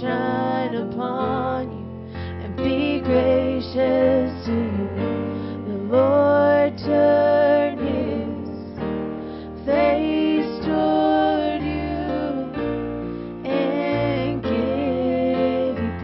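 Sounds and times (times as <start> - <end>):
voices singing: 0.0 - 1.7, 2.4 - 16.0.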